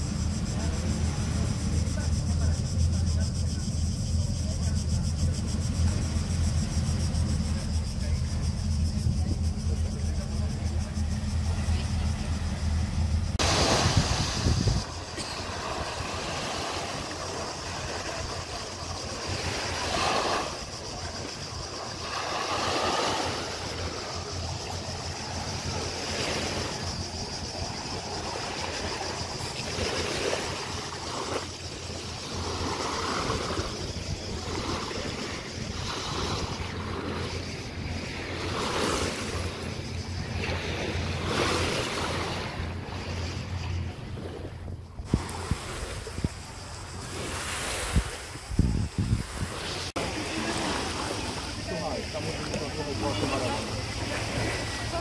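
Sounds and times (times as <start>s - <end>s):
voices of bathers: 0.0s - 47.6s, 48.4s - 55.0s
small waves washing on beach: 10.0s - 55.0s.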